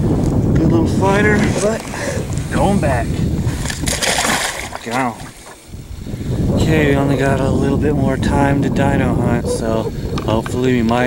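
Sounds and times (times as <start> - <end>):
fish splashing into river: 3.7 - 5.0.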